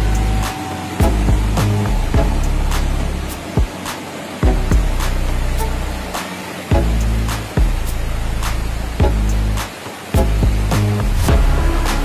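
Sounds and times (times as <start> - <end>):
deep bass notes dropping in pitch: 1.0 - 3.4, 10.2 - 12.0.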